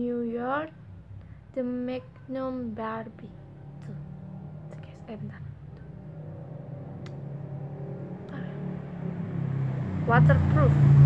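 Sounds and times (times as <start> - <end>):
low vehicle engine hum: 0.0 - 11.0.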